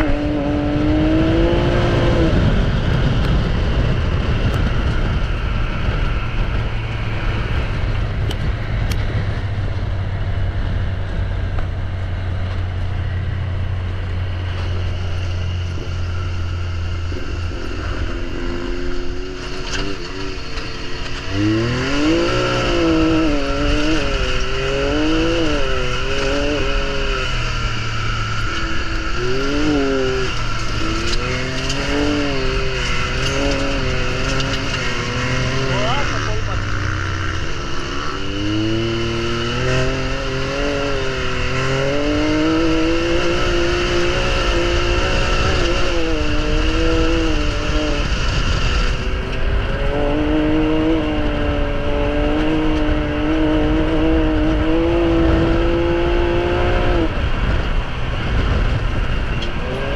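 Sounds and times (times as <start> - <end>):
engine revving: 0.0 - 59.9
tyres rumbling on gravel: 11.0 - 53.1.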